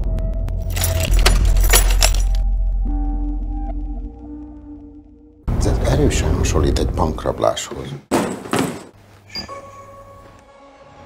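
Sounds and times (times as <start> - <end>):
steady low drone: 0.0 - 7.2
keys jangling: 0.6 - 2.4.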